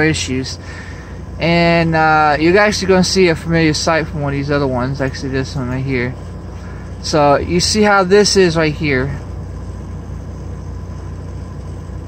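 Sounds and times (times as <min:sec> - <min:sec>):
low pulsing mechanical drone: 0:00.0 - 0:12.0.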